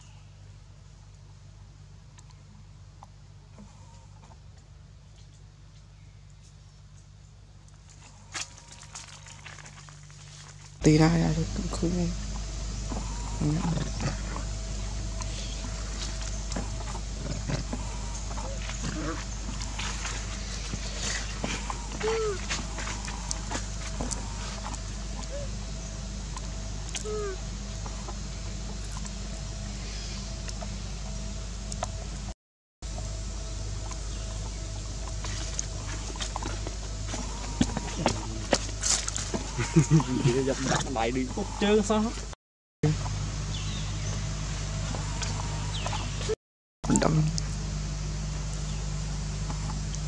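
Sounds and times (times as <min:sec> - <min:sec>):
low outdoor hum: 0:00.0 - 0:50.0
falling animal call: 0:15.2 - 0:25.6, 0:26.9 - 0:28.2, 0:39.2 - 0:41.8.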